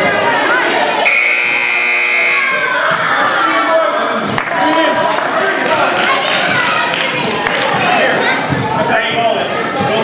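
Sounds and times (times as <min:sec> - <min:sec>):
children and spectators talking: 0:00.0 - 0:10.0
scoreboard buzzer: 0:01.0 - 0:02.6.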